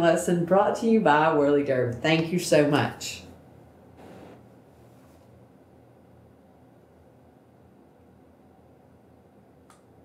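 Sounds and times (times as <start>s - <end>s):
small click: 9.7s - 9.9s.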